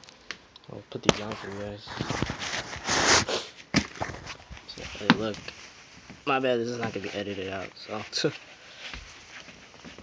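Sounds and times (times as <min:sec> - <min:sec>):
fabric rustling on microphone: 0:01.2 - 0:03.3, 0:03.9 - 0:10.0.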